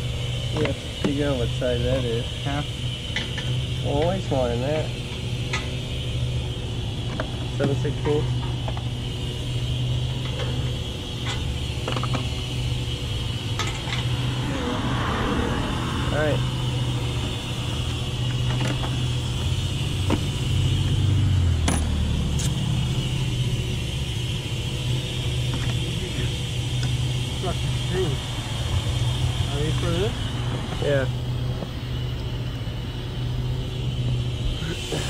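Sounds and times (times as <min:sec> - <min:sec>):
vehicle engine idling: 0:00.0 - 0:35.0.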